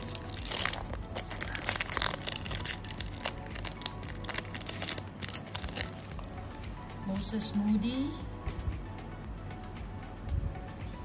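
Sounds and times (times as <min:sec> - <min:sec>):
foil wrapper crinkling and tearing: 0:00.0 - 0:06.4.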